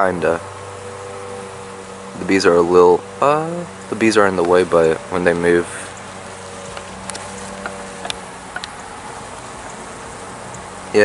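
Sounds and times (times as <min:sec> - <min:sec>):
bees buzzing: 0:00.0 - 0:11.0
faint clicks: 0:05.9 - 0:08.9, 0:10.5 - 0:10.7.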